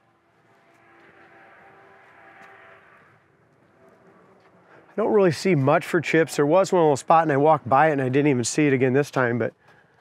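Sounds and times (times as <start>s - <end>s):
distant vehicle engine passing: 0.0s - 7.7s.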